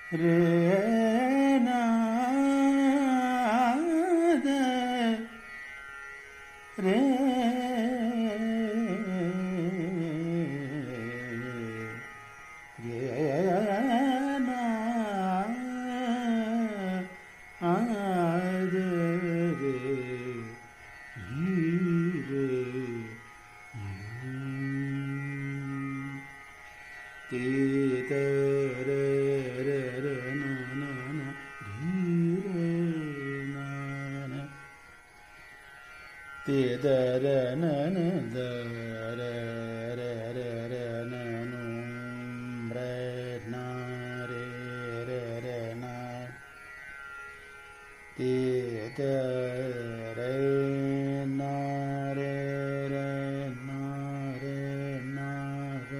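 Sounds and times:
man singing long held notes: 0:00.0 - 0:05.4, 0:06.8 - 0:12.1, 0:12.8 - 0:26.4, 0:27.3 - 0:34.7, 0:36.4 - 0:46.6, 0:48.2 - 0:55.9
faint steady drone: 0:00.0 - 0:55.9.

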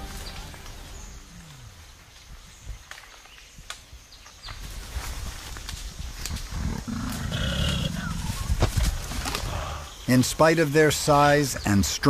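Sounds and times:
gorilla low rough call: 0:06.3 - 0:08.6.

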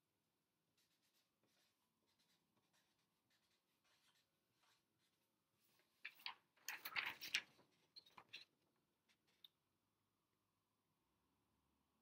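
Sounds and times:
marker strokes on paper: 0:00.7 - 0:05.8
paper crackling: 0:06.0 - 0:08.3.

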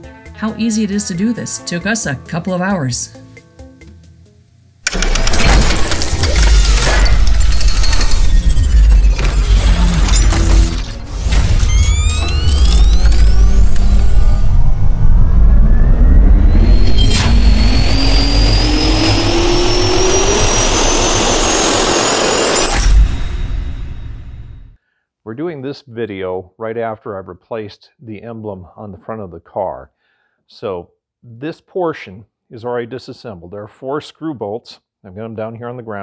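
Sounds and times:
intro music with heavy rumble: 0:04.9 - 0:24.7
whine rising in pitch: 0:05.2 - 0:24.7.

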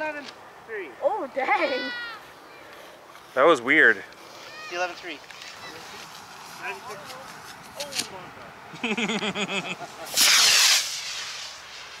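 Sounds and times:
rocket motor hissing: 0:10.0 - 0:12.0.

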